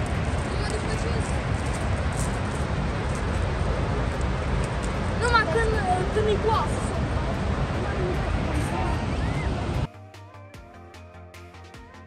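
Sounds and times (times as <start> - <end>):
waterfall rushing: 0.0 - 9.9.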